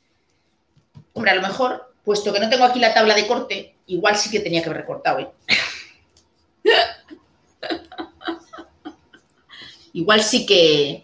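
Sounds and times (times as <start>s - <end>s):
woman laughing: 6.6s - 9.8s.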